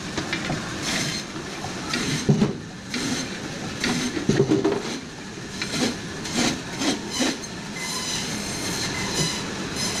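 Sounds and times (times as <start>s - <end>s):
band saw cutting frozen fish: 0.8s - 1.3s, 2.9s - 4.2s, 4.8s - 10.0s.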